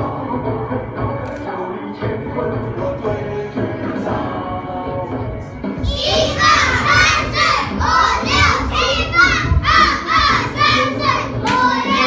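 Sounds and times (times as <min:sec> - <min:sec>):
children shouting rhythmic calls: 0:05.8 - 0:12.0.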